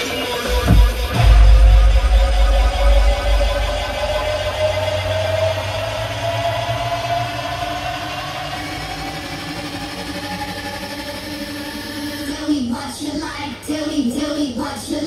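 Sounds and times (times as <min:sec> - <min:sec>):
rising synth drone: 0:00.0 - 0:13.8
heavy bass: 0:00.0 - 0:14.3
electronic music over a speaker: 0:00.0 - 0:15.0.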